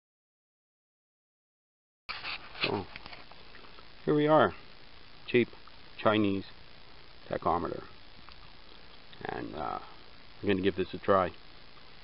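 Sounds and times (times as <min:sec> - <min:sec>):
background noise: 0:02.1 - 0:12.0.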